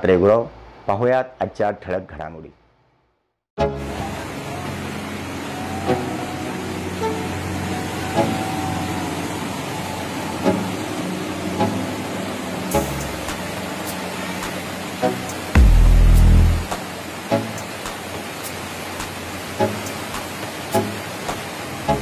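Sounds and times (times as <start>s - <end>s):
floodwater rushing: 3.6s - 22.0s
background music with steady beat: 12.7s - 22.0s.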